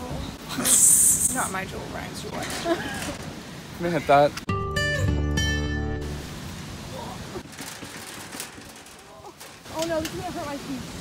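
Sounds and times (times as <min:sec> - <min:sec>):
steady outdoor noise: 0:00.0 - 0:11.0
woman's voice: 0:09.2 - 0:10.9.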